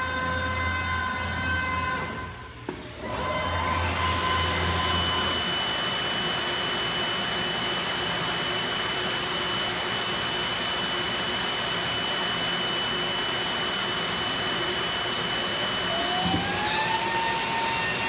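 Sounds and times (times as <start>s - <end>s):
vacuum blower rushing: 2.0s - 10.5s, 11.9s - 18.0s.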